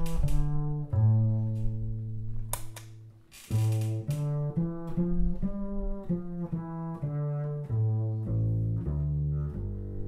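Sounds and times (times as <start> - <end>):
double bass plucked notes: 0.0 - 10.0.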